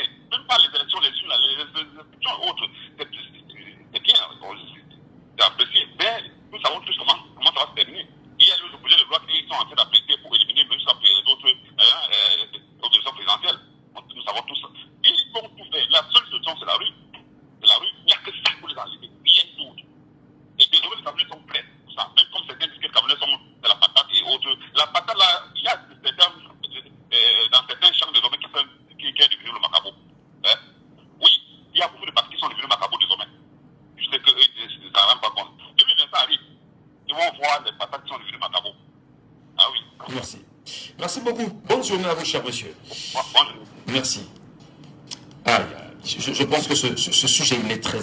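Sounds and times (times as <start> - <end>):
person speaking over telephone: 0.0 - 19.9, 20.6 - 30.6, 31.2 - 36.5, 37.1 - 38.8, 39.6 - 44.4, 45.4 - 48.0.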